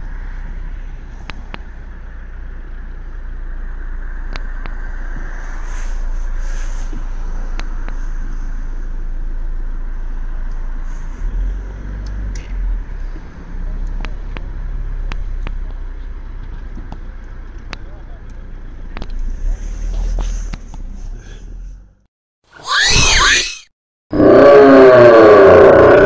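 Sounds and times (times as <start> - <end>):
passing cars: 0.0 - 22.1.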